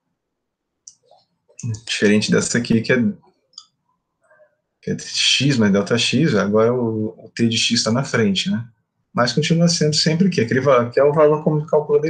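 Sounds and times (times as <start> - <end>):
man speaking: 1.6 - 3.2, 4.8 - 12.0.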